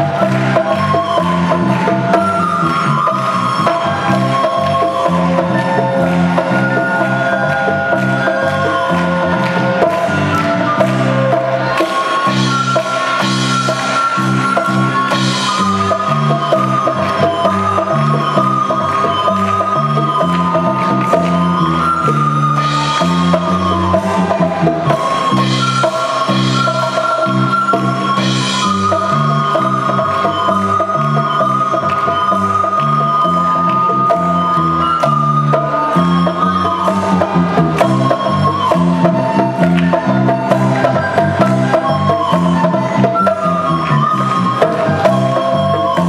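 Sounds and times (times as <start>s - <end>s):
drum kit: 0.0s - 46.0s
recorders and violin melody: 0.0s - 46.0s.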